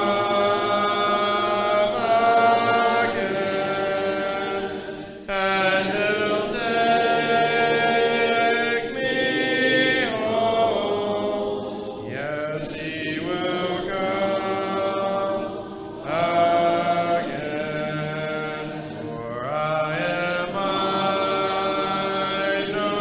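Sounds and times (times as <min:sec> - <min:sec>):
congregation singing a hymn: 0:00.0 - 0:23.0.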